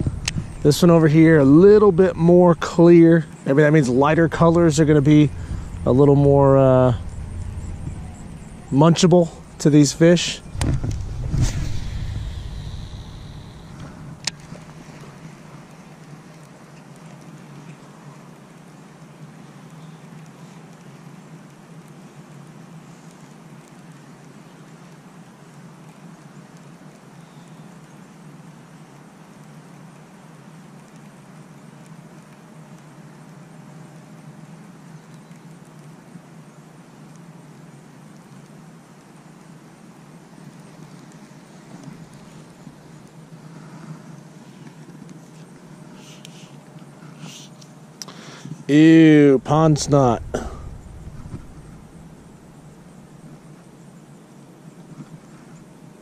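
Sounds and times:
low hum: 0:00.0 - 0:15.7, 0:48.6 - 0:53.8
faint hiss: 0:00.0 - 0:56.0.

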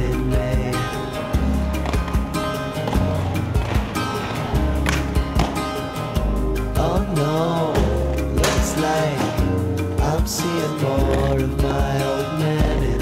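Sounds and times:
deep held bass notes: 0:00.0 - 0:13.0
instrumental song with steady beat: 0:00.0 - 0:13.0.

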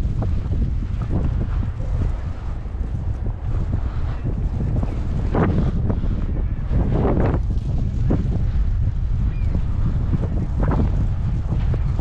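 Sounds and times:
strong wind buffeting microphone: 0:00.0 - 0:12.0.

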